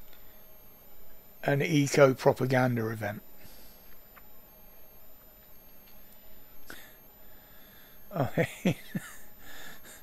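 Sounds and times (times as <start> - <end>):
faint high-pitched whine: 0.0 - 10.0
man chuckling: 8.1 - 10.0.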